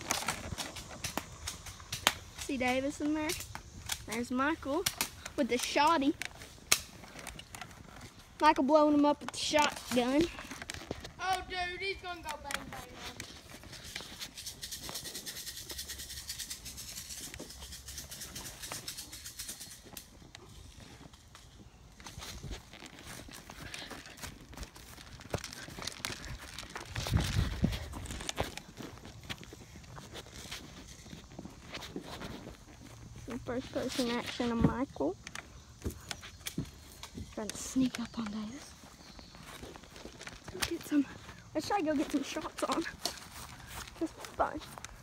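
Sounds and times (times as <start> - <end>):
footsteps through grass: 0.0 - 45.0
person speaking: 11.2 - 13.3, 33.3 - 35.2, 43.9 - 44.8.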